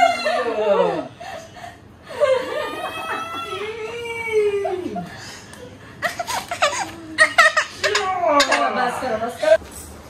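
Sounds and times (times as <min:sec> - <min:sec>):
people laughing: 0:02.1 - 0:09.1.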